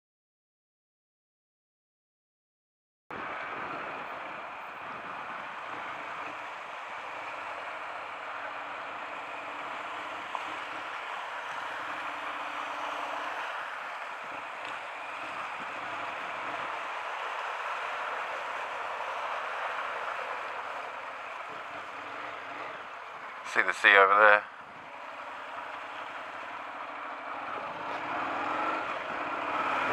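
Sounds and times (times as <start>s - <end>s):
wheels rolling through water: 3.2s - 23.2s.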